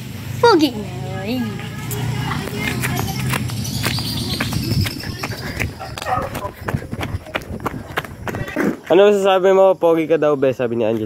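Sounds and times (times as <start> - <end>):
footsteps of sneakers on pavement: 1.5 - 8.8.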